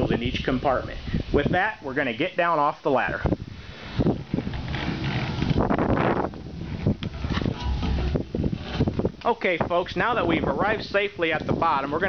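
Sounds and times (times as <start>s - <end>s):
handling noise: 3.8s - 9.4s.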